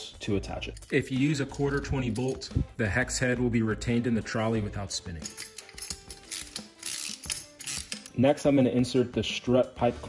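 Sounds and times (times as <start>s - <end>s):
metal parts clicking and clinking: 0.4s - 2.6s, 5.1s - 8.2s.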